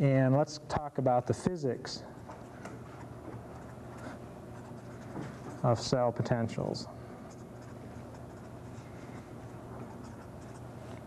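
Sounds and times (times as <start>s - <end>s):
steady low hum: 0.0s - 11.0s
marker pen scratching on paper: 2.4s - 5.9s, 7.2s - 11.0s.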